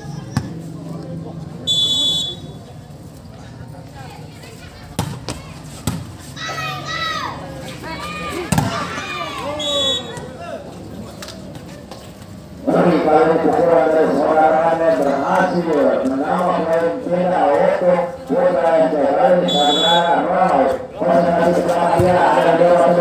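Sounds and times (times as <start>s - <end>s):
voices calling out: 0.0s - 23.0s
referee whistle blasts: 1.7s - 2.6s, 9.5s - 10.2s, 19.5s - 20.1s
volleyball being hit: 8.5s - 9.5s.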